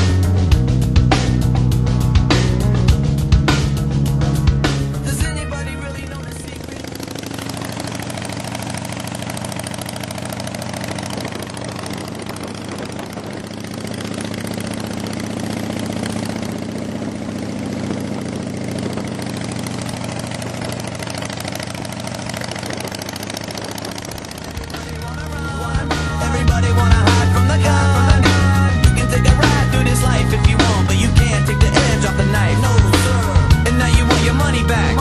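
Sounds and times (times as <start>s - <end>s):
motorcycle engines cruising: 0.0s - 35.0s.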